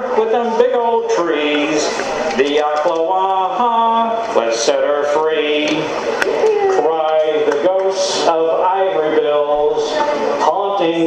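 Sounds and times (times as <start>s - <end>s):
man singing folk song: 0.0s - 5.9s, 6.8s - 11.0s.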